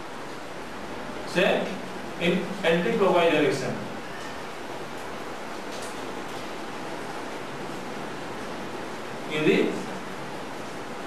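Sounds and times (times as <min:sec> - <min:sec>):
background recording hiss: 0:00.0 - 0:11.0.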